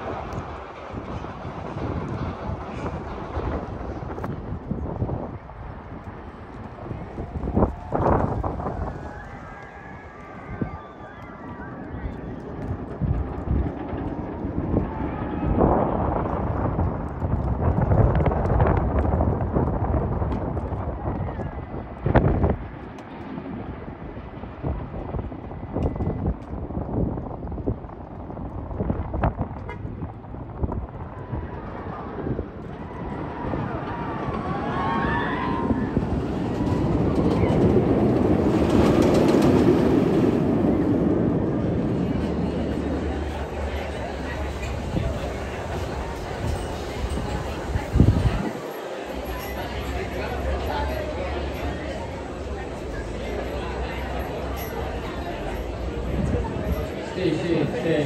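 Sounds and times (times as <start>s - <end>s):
roller coaster rumbling on track: 0.0s - 58.0s
riders screaming and shouting: 6.5s - 16.5s, 31.0s - 52.4s.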